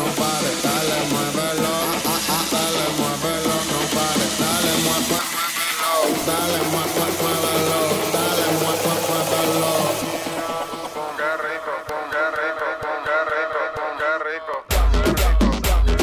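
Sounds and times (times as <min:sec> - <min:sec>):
dance music: 0:00.0 - 0:16.0
person singing: 0:00.0 - 0:16.0.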